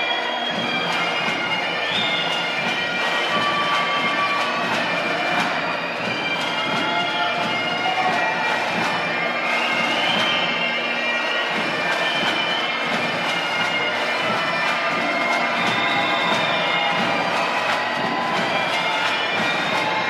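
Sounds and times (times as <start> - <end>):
bagpipe music: 0.0 - 20.0.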